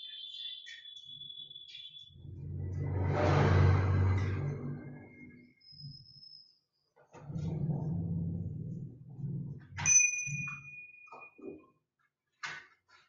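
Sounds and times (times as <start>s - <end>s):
small metal bell ringing: 9.8s - 11.4s.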